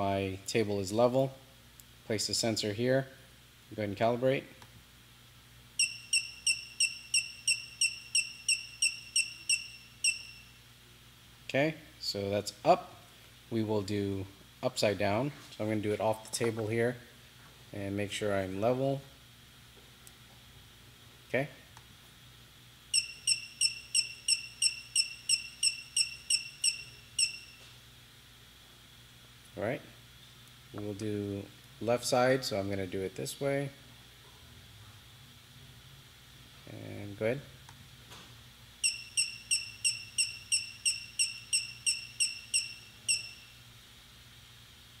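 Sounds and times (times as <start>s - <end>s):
short high electronic beeps: 5.8s - 10.6s, 23.0s - 27.6s, 38.8s - 43.6s.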